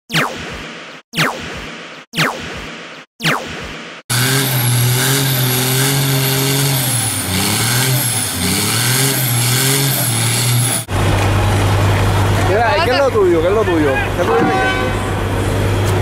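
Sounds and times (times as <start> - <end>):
diesel truck engine revving: 4.1 - 14.3.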